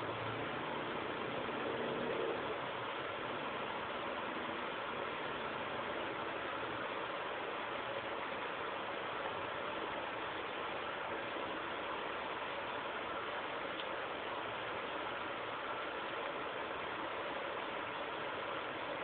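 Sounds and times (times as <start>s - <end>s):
steady background noise: 0.0s - 19.0s.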